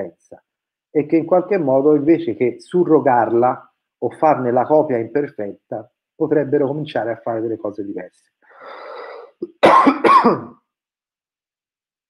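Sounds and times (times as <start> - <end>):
man clearing throat: 9.4 - 10.6.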